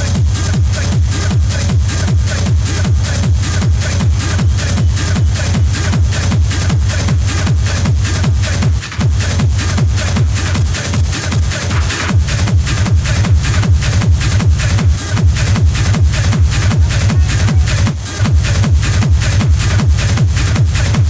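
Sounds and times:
hard techno music: 0:00.0 - 0:21.0
high percussion: 0:00.0 - 0:21.0
pounding kick drum: 0:00.0 - 0:21.0.

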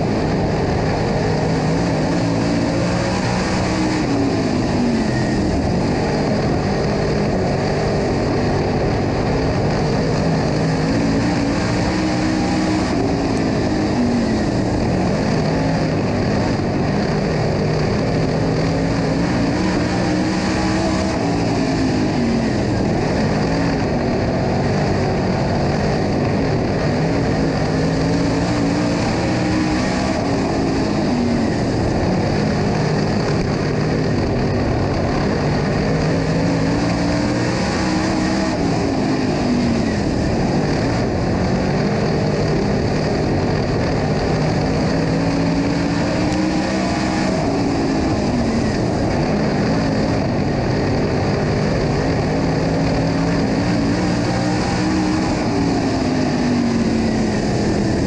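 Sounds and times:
race car engine at racing speed: 0:00.0 - 0:58.0.

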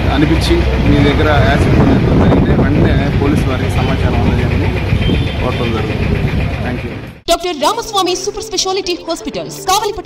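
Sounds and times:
man talking: 0:00.0 - 0:04.8, 0:05.4 - 0:06.0
vehicle engine rumbling: 0:00.0 - 0:07.4.

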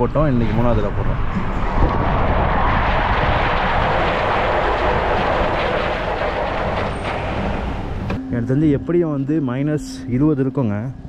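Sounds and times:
low engine rumble: 0:00.0 - 0:10.2.

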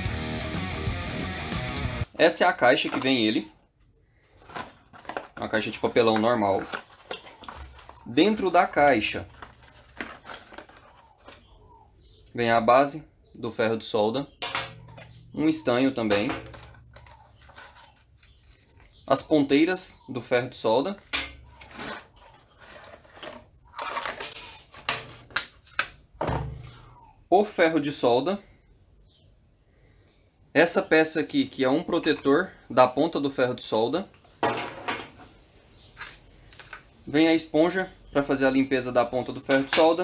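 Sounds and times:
handling small items on workbench: 0:02.5 - 0:12.3, 0:14.4 - 0:19.2, 0:21.0 - 0:27.0, 0:34.1 - 0:37.0
cardboard box and plastic bag rustling: 0:04.2 - 0:11.8, 0:21.5 - 0:25.7.

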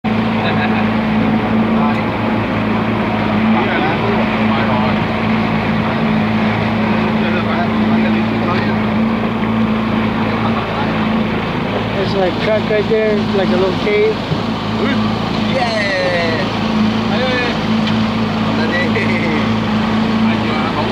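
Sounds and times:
outboard motor droning: 0:00.0 - 0:20.9.

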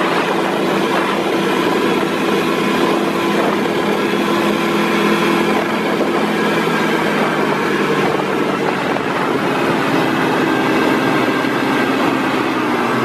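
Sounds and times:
snowmobile engine running: 0:00.0 - 0:13.0.

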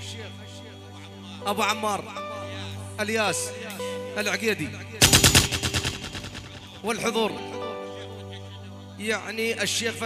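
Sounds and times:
automatic gunfire: 0:05.0 - 0:06.8.

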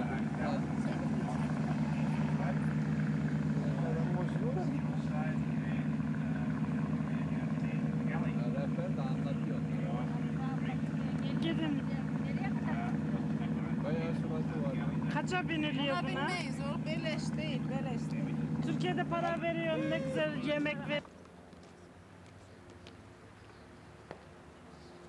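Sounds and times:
low engine drone: 0:00.0 - 0:21.0
people chatting faintly: 0:00.0 - 0:21.1.

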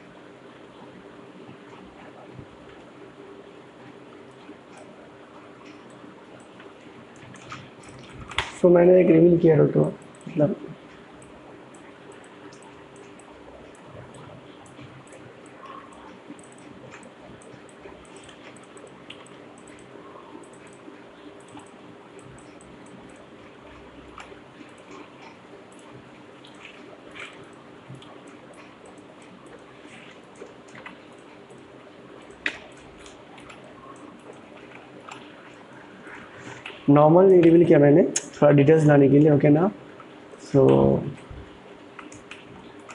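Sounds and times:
faint room hum: 0:00.0 - 0:42.9
computer mouse clicks: 0:05.6 - 0:08.6, 0:09.8 - 0:37.6, 0:42.0 - 0:42.9.

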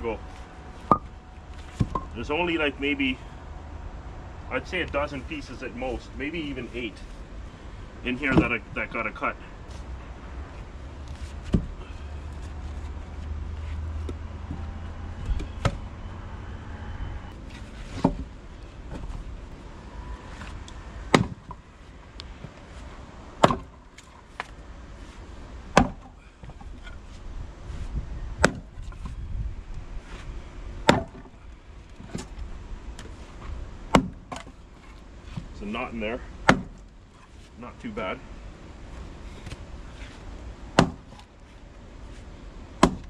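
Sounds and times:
maul splitting wood: 0:20.3 - 0:21.6, 0:23.4 - 0:24.6, 0:25.7 - 0:27.0, 0:28.4 - 0:29.2, 0:30.8 - 0:32.4, 0:33.9 - 0:35.5, 0:36.4 - 0:37.3, 0:39.3 - 0:42.2, 0:42.8 - 0:43.0.

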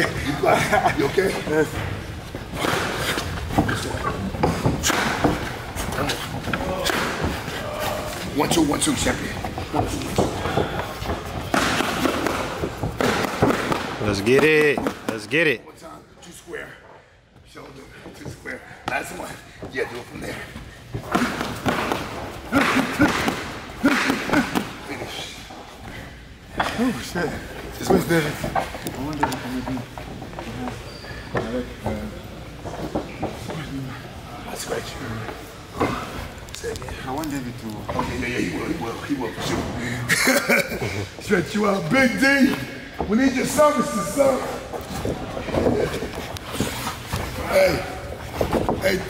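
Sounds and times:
boxing gloves striking pads: 0:09.7 - 0:15.1.

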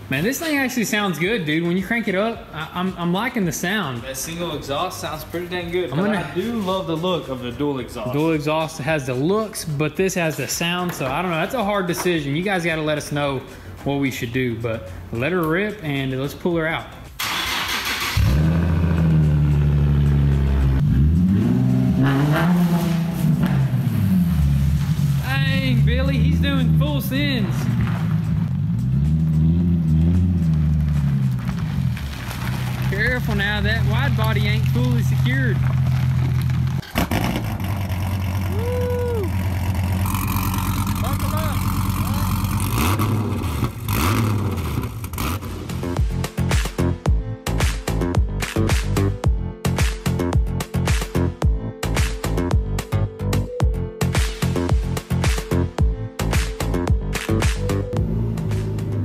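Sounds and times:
car engine starting and revving: 0:17.2 - 0:46.3, 0:57.7 - 0:59.0.

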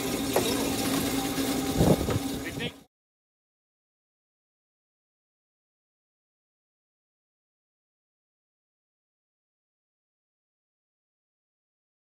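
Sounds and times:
machine humming: 0:00.0 - 0:02.9.

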